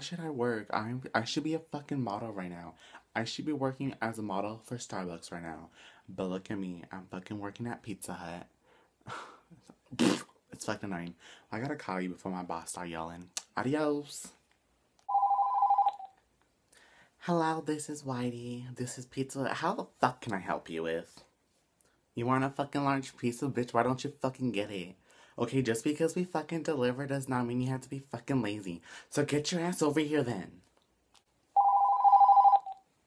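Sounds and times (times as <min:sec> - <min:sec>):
warbling electronic telephone ring: 0:15.1 - 0:16.2, 0:31.6 - 0:32.8.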